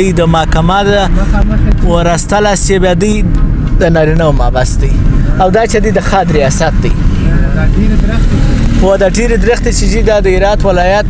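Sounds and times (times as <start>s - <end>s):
vehicle driving rumble: 0.0s - 11.0s.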